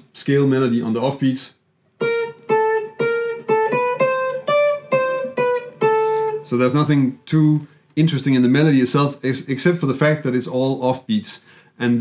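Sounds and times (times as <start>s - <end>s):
electric guitar playing jazz blues: 2.0s - 7.3s.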